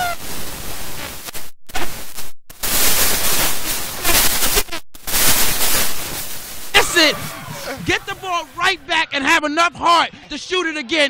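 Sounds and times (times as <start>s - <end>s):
crowd cheering loudly: 6.8s - 11.0s.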